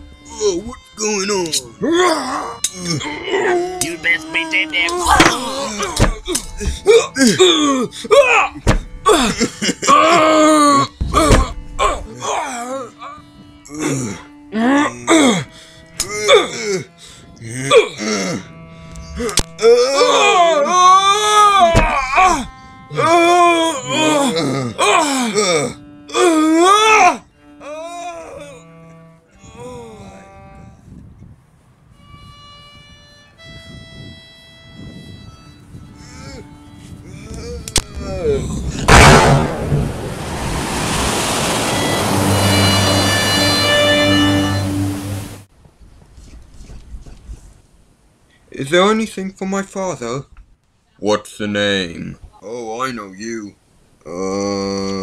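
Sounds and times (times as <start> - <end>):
film score music: 0.0 - 30.8, 31.9 - 45.5
man groaning and crying: 1.7 - 28.8, 29.4 - 30.3, 36.0 - 38.9, 54.0 - 55.0
rushing noise: 37.8 - 45.5
loud bang: 38.7 - 42.8.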